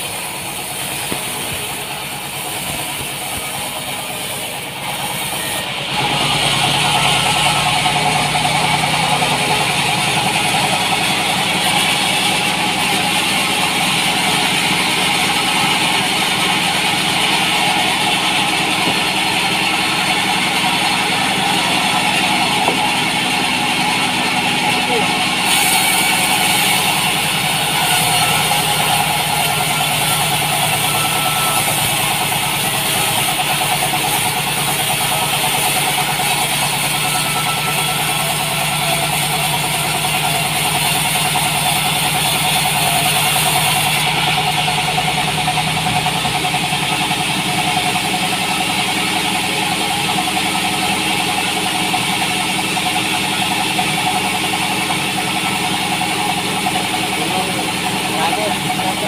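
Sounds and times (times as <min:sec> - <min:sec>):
high hiss of blade cutting wood: 0:00.0 - 0:05.6, 0:25.4 - 0:39.2
bandsaw running: 0:00.0 - 0:59.0.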